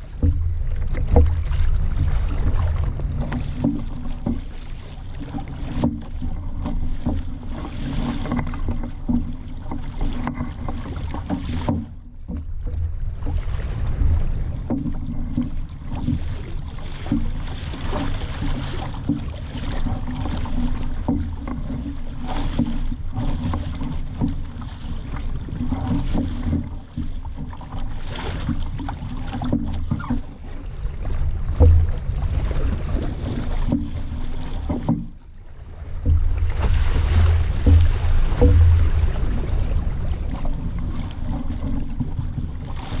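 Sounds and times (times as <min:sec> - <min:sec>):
water washing along hull: 0:00.0 - 0:43.0
wind buffeting microphone: 0:12.4 - 0:16.7, 0:30.2 - 0:34.8, 0:35.4 - 0:42.8.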